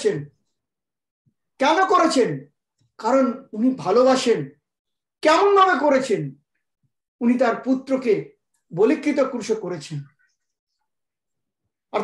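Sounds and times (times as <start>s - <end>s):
man speaking: 0.0s - 0.4s, 1.6s - 4.6s, 5.2s - 6.4s, 7.2s - 10.2s.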